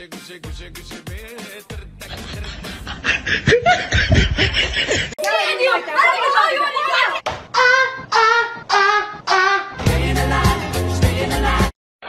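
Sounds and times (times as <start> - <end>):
person laughing and snickering: 2.0 - 5.2
voices talking: 5.2 - 9.0.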